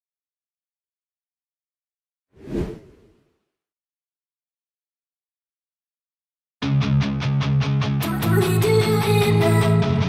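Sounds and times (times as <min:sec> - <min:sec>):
whoosh: 0:02.4 - 0:03.2.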